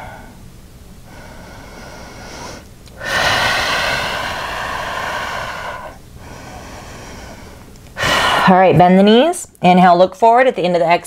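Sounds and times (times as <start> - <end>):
quiet breathing: 0.0 - 0.4, 1.0 - 8.6
person breathing out: 1.1 - 8.5.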